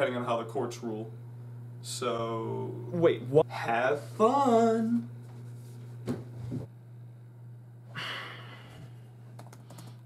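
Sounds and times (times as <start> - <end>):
steady low hum: 0.0 - 10.0
typing on computer keyboard: 9.4 - 10.0.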